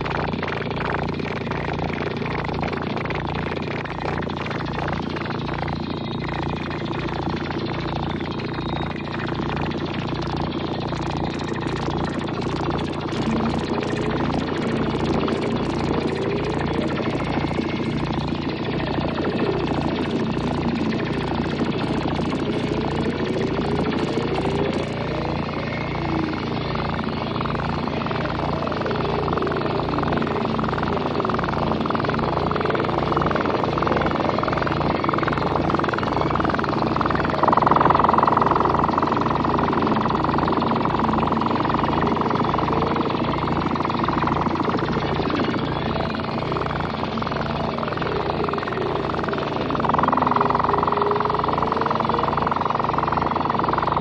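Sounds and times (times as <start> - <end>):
high rhythmic ticking: 0.0 - 54.0
low pulsing synthesizer drone: 0.0 - 54.0
steady synth tone: 0.0 - 54.0
warbling synth tone: 0.0 - 54.0.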